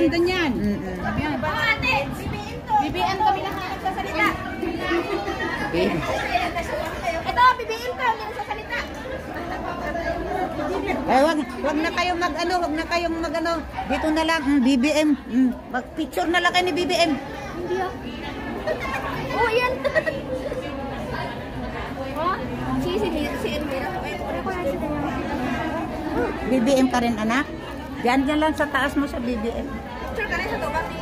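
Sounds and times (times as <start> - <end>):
women talking: 0.0 - 17.4, 22.1 - 31.0
women chattering: 0.0 - 31.0.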